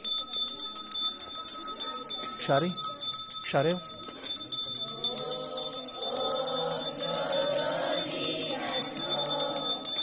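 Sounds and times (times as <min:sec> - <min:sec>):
handheld bell ringing rapidly: 0:00.0 - 0:10.0.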